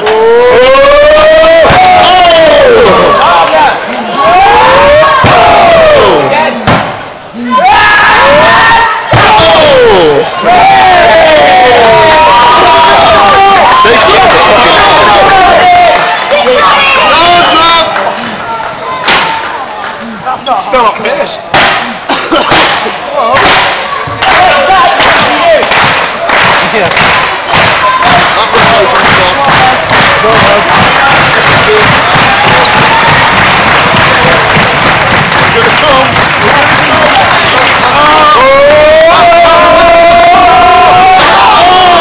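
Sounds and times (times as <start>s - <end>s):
long drawn-out yells: 0.0s - 6.6s, 7.4s - 17.9s, 36.8s - 42.0s
crowd shouting: 0.0s - 6.7s, 7.3s - 20.1s, 21.8s - 42.0s.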